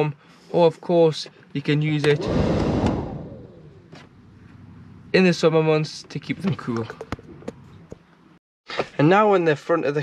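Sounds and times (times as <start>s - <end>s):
heater fan spinning down: 2.0s - 4.0s.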